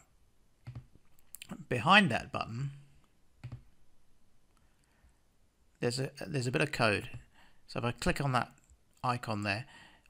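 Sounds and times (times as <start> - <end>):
computer mouse clicks: 0.6 - 1.5, 3.0 - 3.7.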